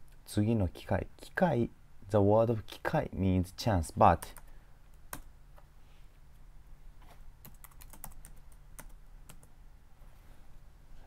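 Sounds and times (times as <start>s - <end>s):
faint steady low hum: 0.0s - 11.0s
keyboard typing clicks: 7.4s - 9.5s.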